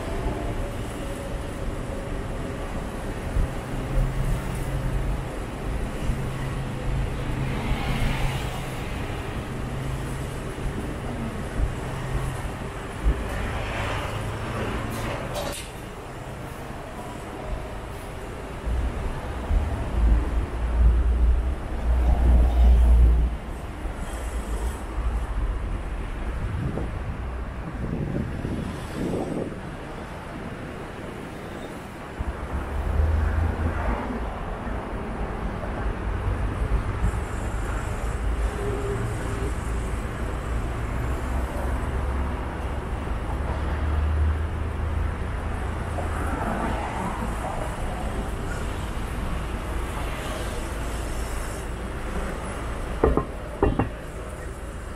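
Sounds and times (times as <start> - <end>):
cars and buses passing: 0.0 - 54.9
wind buffeting microphone: 26.2 - 30.8.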